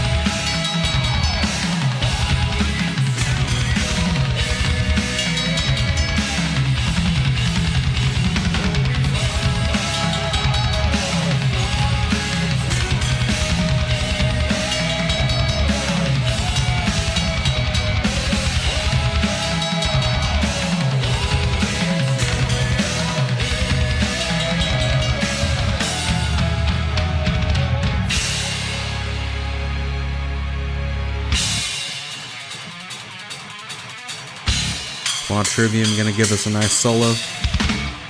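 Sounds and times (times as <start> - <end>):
rapid bass drum strokes: 0.0 - 30.0, 31.3 - 33.4, 34.4 - 38.0
heavy metal music: 0.0 - 38.0.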